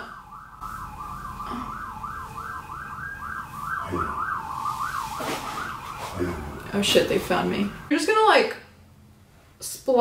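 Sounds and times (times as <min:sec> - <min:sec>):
siren yelping: 0:00.0 - 0:08.2.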